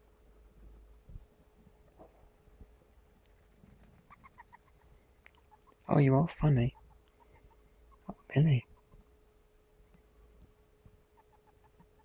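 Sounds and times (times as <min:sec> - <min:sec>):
hamster squeaking: 0:03.8 - 0:09.2, 0:11.1 - 0:12.0.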